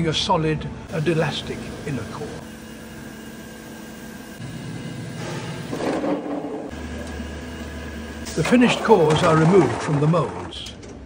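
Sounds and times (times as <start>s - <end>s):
factory machinery humming: 0.0s - 11.0s
rough machine noise: 0.9s - 11.0s.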